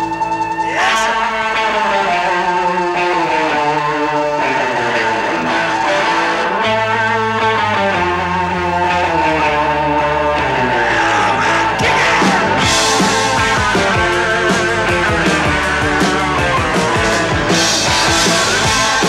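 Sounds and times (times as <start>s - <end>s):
bass notes: 0.0s - 19.0s
electric guitar lead with bends: 0.0s - 19.0s
rock band playing: 0.0s - 19.0s.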